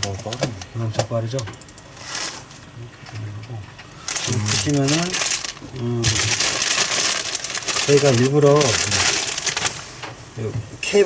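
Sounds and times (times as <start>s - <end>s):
plastic bag crinkling: 4.0s - 9.9s.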